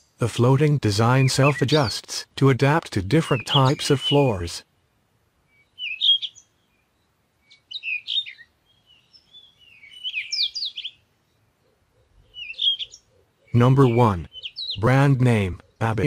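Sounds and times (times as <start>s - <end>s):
bird chirping and twittering: 1.0s - 2.2s, 2.8s - 4.6s, 5.5s - 16.0s.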